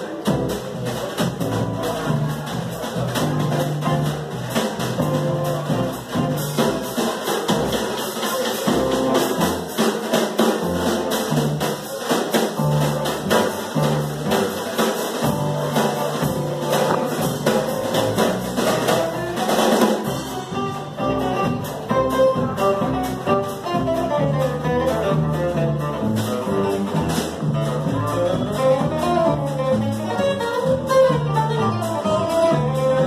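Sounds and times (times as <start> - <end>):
upright double bass notes: 0.0 - 8.0, 8.6 - 9.8, 10.6 - 11.9, 12.6 - 33.0.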